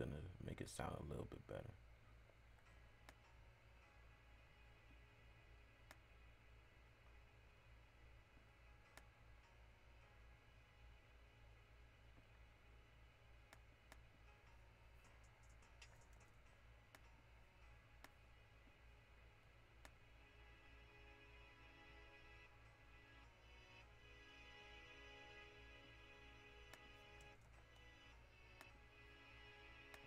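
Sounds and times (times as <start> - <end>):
low steady hum: 0.0 - 30.0
computer mouse clicks: 15.0 - 17.1.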